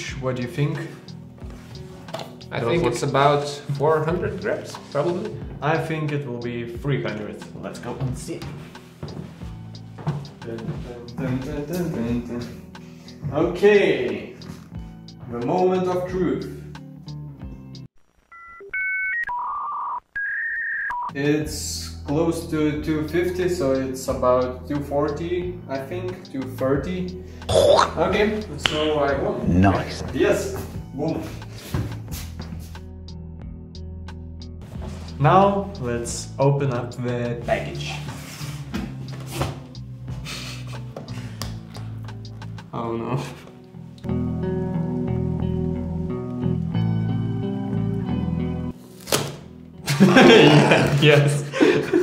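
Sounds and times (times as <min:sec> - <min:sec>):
background music: 0:00.0 - 0:17.9, 0:20.2 - 0:52.0
electronic beeps: 0:18.3 - 0:21.1.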